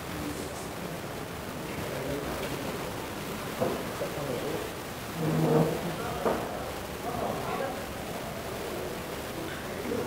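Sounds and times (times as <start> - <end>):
busy room background noise: 0.0 - 10.0.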